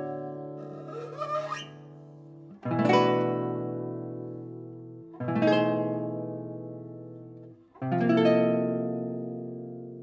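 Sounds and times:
finger squeak sliding on strings: 0.6s - 1.9s.

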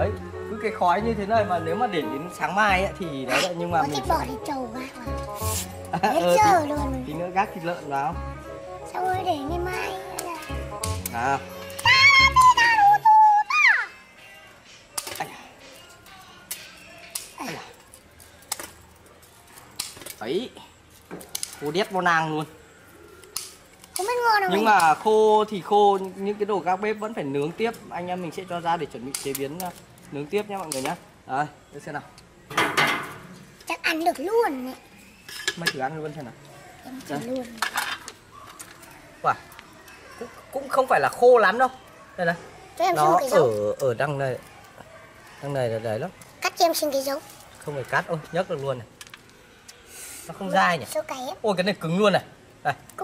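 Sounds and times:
music: 0.0s - 17.7s.

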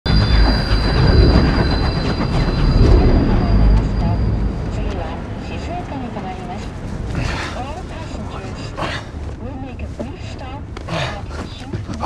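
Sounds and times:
high-speed train rushing past: 0.1s - 10.4s.

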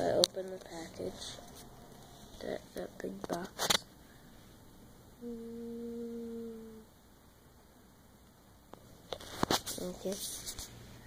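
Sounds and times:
person humming low note: 5.2s - 6.9s.

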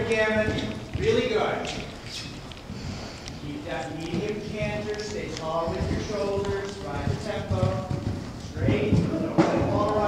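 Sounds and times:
muffled hoofbeats of horse cantering: 0.0s - 10.0s.

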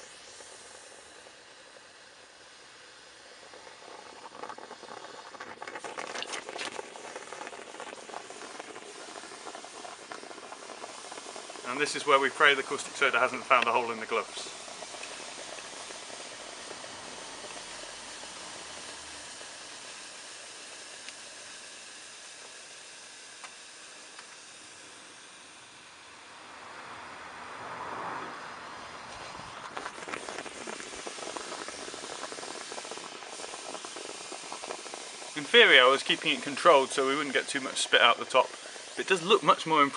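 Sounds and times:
liquid being poured: 0.0s - 25.3s, 29.2s - 39.9s
chemical solution fizzing and hissing: 0.0s - 27.4s, 28.2s - 39.9s.

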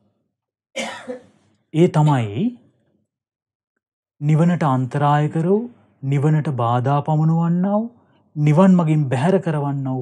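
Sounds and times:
man clearing throat: 0.8s - 1.3s
man speaking: 1.8s - 2.7s, 4.2s - 10.0s.

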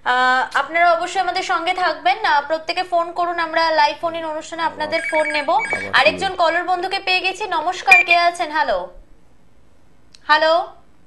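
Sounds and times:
person speaking: 4.1s - 6.9s, 7.8s - 8.4s
telephone ringing: 4.8s - 6.7s.

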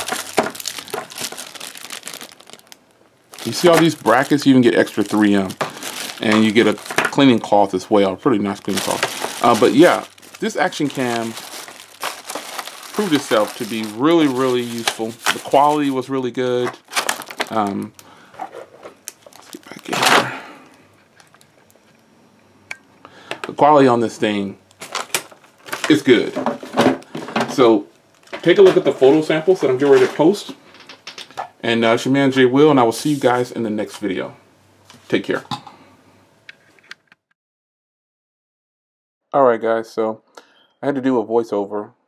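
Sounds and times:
plastic bags crinkling: 0.0s - 21.7s, 24.2s - 30.3s.

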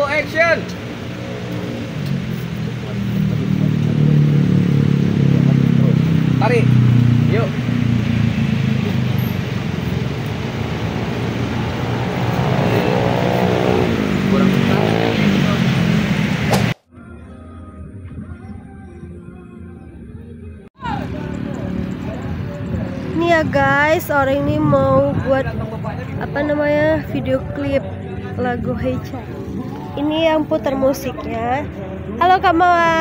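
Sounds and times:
road traffic rumble: 0.0s - 18.6s, 19.3s - 33.0s.

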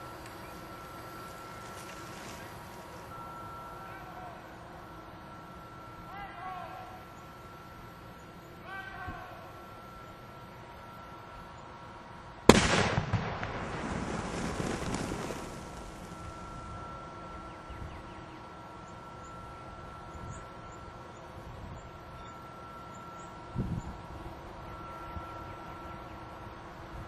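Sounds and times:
loud explosive blast with rumble: 12.5s - 16.6s.

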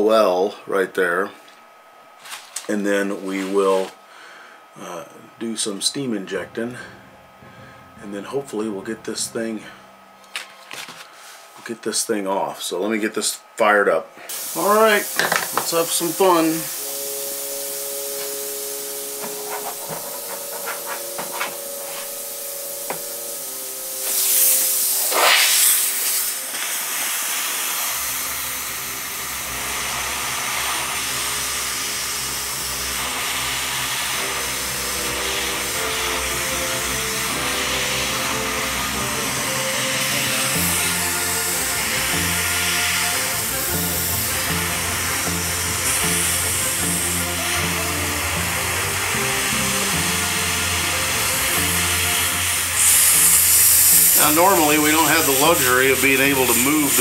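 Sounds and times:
steam wand hissing: 14.2s - 57.0s
music with steady beat: 15.2s - 26.4s, 34.3s - 54.4s.

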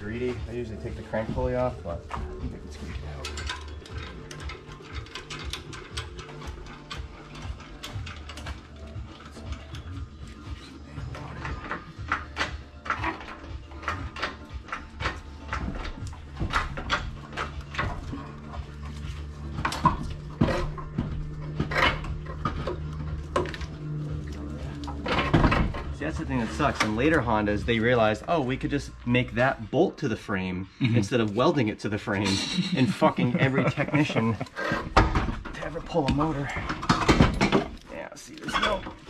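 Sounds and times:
metallic clicks and clanks of tools: 0.1s - 28.7s, 33.0s - 39.0s.

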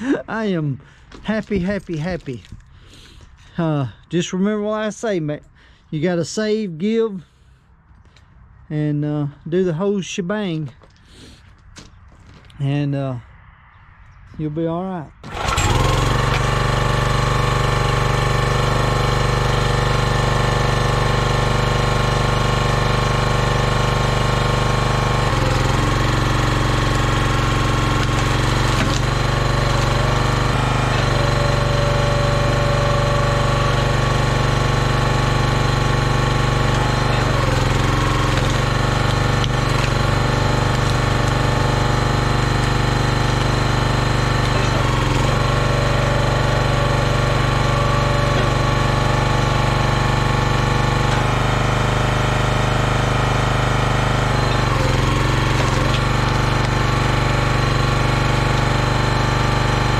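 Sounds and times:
log splitter engine running: 0.0s - 3.6s, 15.2s - 59.9s.

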